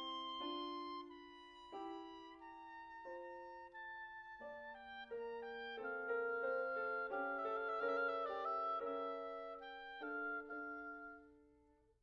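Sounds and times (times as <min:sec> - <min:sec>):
oboe playing classical melody: 0:00.0 - 0:11.6
piano accompaniment: 0:00.0 - 0:11.7.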